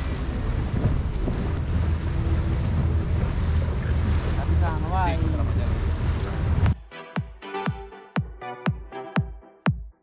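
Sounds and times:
boat engine rumble: 0:00.0 - 0:06.8
water rushing past hull: 0:00.0 - 0:06.8
wind buffeting microphone: 0:00.0 - 0:06.8.

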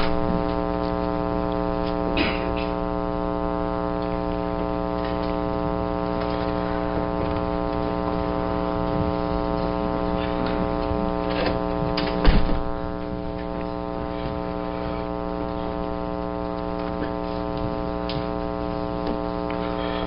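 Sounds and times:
mains hum: 0:00.0 - 0:20.0.

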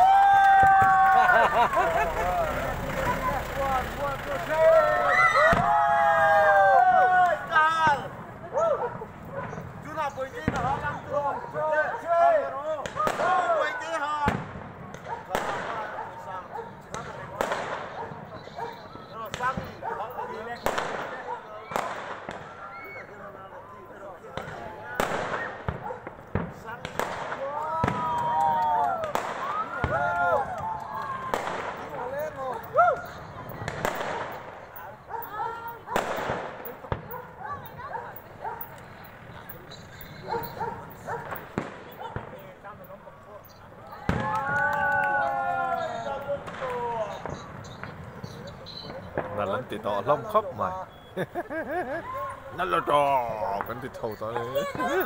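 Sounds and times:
spectators calling out: 0:00.0 - 0:09.7, 0:27.6 - 0:55.0
fireworks bangs: 0:00.0 - 0:22.8, 0:24.2 - 0:51.4, 0:52.0 - 0:55.0
crowd chatter: 0:00.0 - 0:55.0.

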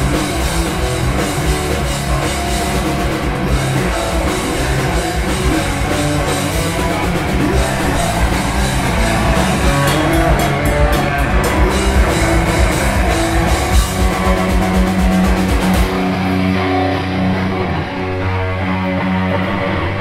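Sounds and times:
fast drums: 0:00.0 - 0:16.9
loud electric guitars: 0:00.0 - 0:20.0.

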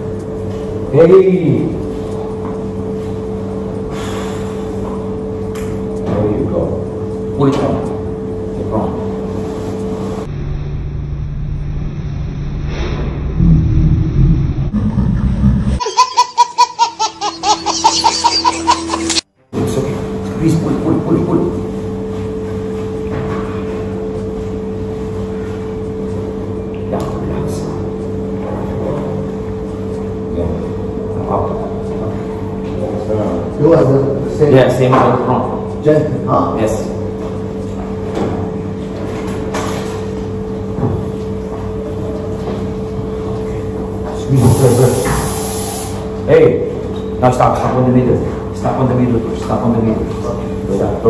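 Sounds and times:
steady low hum: 0:00.0 - 0:16.0, 0:17.4 - 0:51.0
low rumble: 0:10.3 - 0:15.8.

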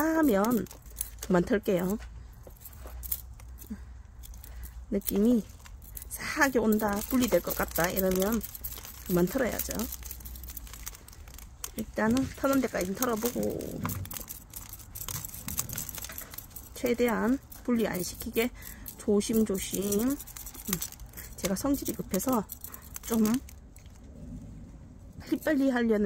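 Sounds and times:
metal tweezers clicking: 0:00.0 - 0:02.0, 0:02.6 - 0:23.6.

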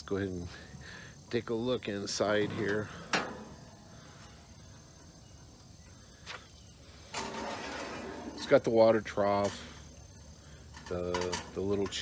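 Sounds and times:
metal pan scraping out of smoker: 0:07.0 - 0:09.9.

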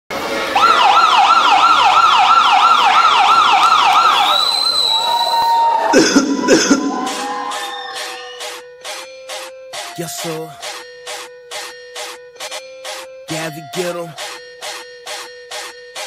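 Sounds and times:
siren sound effect: 0:00.2 - 0:08.6
hip-hop beat: 0:00.7 - 0:16.0
held high tone: 0:05.9 - 0:16.0.

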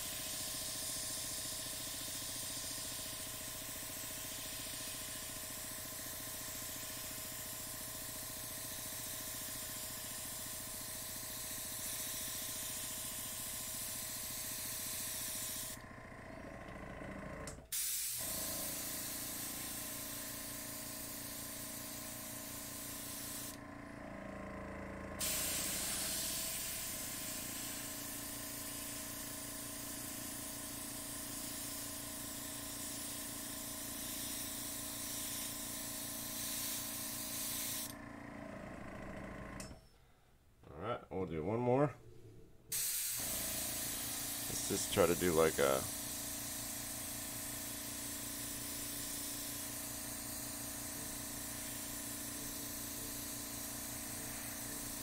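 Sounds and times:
airbrush spraying hiss: 0:00.0 - 0:15.8, 0:17.7 - 0:23.6, 0:25.2 - 0:37.9, 0:42.7 - 0:55.0
air compressor motor hum: 0:00.0 - 0:39.9, 0:42.7 - 0:55.0.

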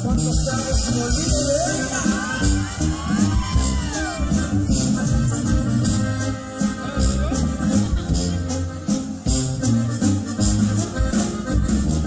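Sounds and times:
deep bass: 0:00.0 - 0:12.0
drums: 0:00.0 - 0:12.0
live band playing instrumental: 0:00.0 - 0:12.0.

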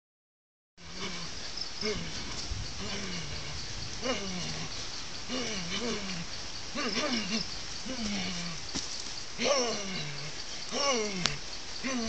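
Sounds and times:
short low calls: 0:00.8 - 0:08.7, 0:09.4 - 0:12.0
insects buzzing: 0:00.8 - 0:12.0.

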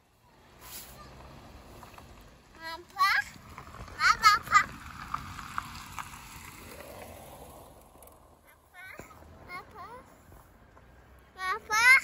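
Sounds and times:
faint outdoor noise: 0:00.0 - 0:12.0
young child's high-pitched vocal sound: 0:00.2 - 0:01.4, 0:11.4 - 0:12.0.

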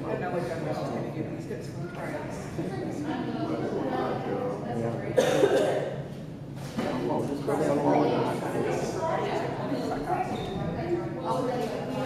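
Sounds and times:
spectators talking: 0:00.0 - 0:12.0
sharp cough: 0:05.2 - 0:06.0.

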